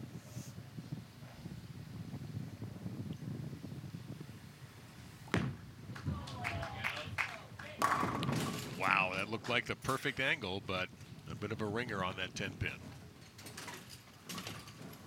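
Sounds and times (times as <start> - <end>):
sharp thud: 5.3 - 5.6
bowling ball rolling on wooden lane: 7.8 - 9.5
bowling pins clattering: 7.8 - 10.2.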